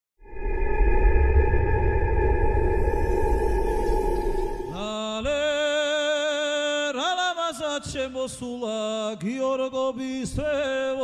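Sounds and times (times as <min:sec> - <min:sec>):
electronic drone with bass rumble: 0:00.2 - 0:05.0
steady high tones: 0:00.2 - 0:05.6.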